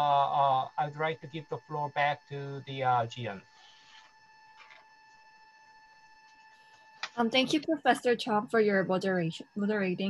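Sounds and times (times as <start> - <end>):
thin high-pitched tone: 0.0 - 3.4
faint line noise: 0.0 - 4.9.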